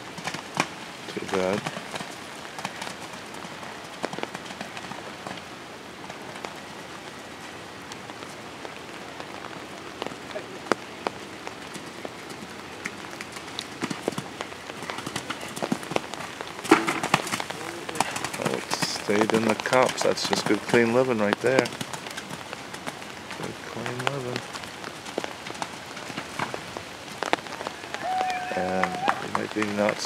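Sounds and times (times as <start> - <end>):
rain on an umbrella: 0.0 - 30.0
raindrops ticking: 0.0 - 30.0
voices: 17.4 - 21.7, 23.3 - 24.4, 27.5 - 30.0.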